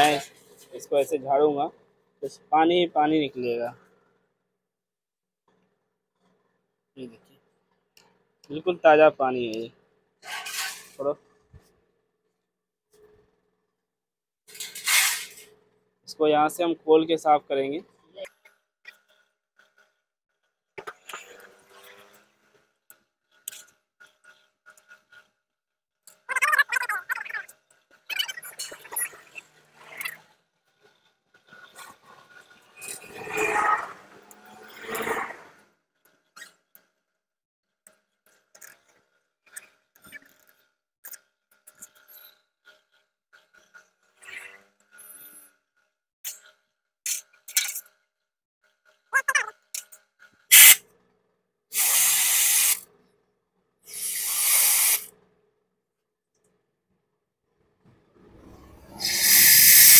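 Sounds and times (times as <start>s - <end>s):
compressed air blasts: 50.5s - 50.8s, 51.7s - 52.8s, 53.9s - 55.1s, 58.9s - 59.9s.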